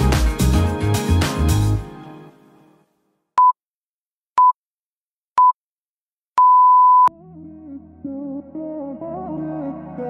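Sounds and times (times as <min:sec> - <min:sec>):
timer beeps: 0:06.4 - 0:07.1.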